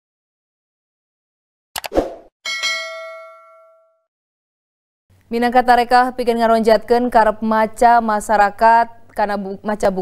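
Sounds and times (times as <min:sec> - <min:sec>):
bright bell ding: 0:02.5 - 0:04.1.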